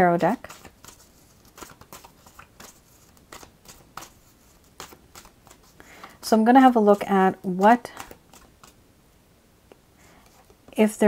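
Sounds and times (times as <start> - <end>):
cards being shuffled: 0.2 - 8.8.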